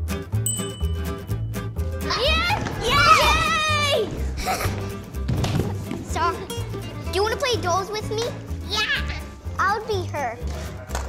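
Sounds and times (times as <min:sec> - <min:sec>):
children shouting and squealing: 0:02.1 - 0:04.2.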